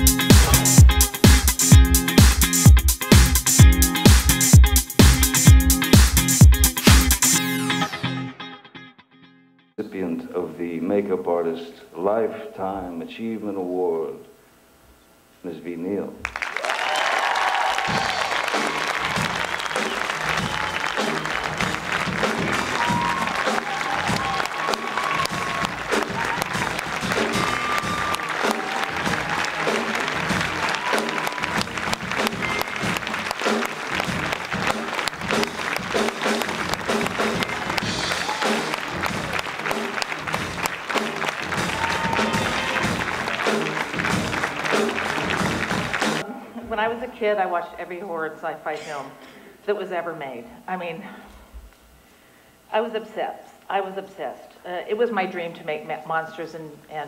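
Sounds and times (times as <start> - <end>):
instrumental walk-on music: 0.0 - 8.8, 18.4 - 46.2
audience applauding: 16.2 - 46.2.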